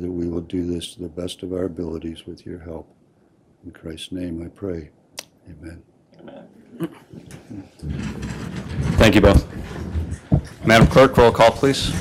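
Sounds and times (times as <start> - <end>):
people sitting in padded chairs: 6.2 - 12.0.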